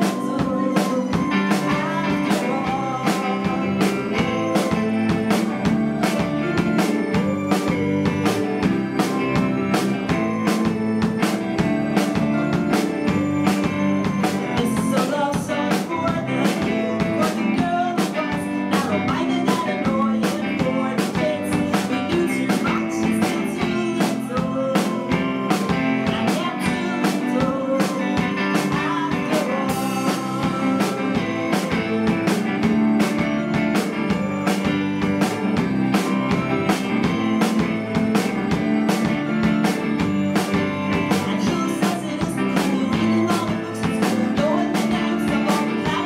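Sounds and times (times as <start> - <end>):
drum kit beat: 0.0 - 46.0
guitar: 0.0 - 46.0
keyboard: 0.0 - 46.0.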